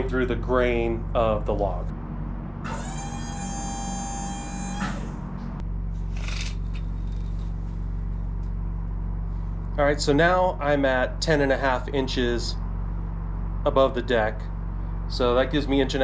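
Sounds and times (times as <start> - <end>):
low engine hum: 0.0 - 16.0
hydraulic pump whining: 1.9 - 8.0.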